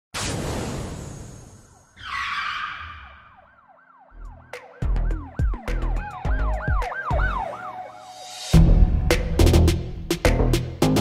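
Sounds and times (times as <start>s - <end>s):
siren wailing: 1.9s - 8.5s.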